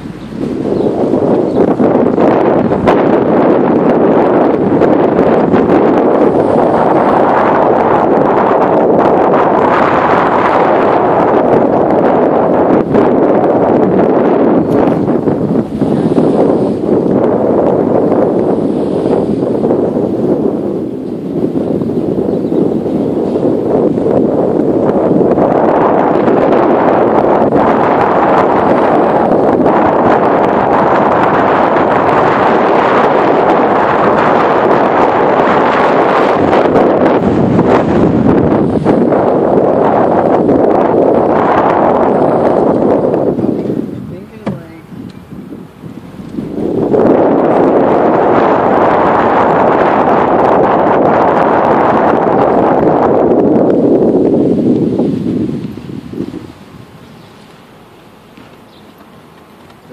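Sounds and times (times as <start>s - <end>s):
wind rushing on microphone: 0.0s - 59.9s.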